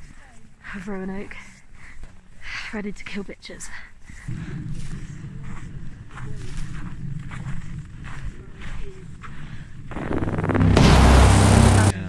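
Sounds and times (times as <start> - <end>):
vehicle engine running: 9.9 - 12.0
loud rushing noise: 10.0 - 12.0.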